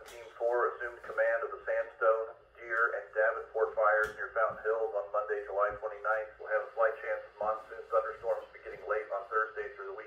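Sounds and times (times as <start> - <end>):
tinny voice from radio speaker: 0.0 - 10.0.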